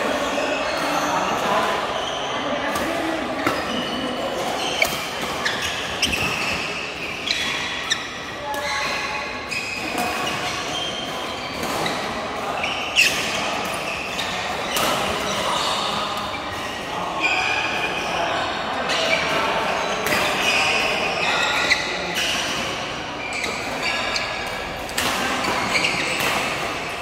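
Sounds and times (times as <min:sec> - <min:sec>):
players' voices: 0:00.0 - 0:27.0
badminton rackets hitting shuttlecocks: 0:02.7 - 0:16.9, 0:18.9 - 0:27.0.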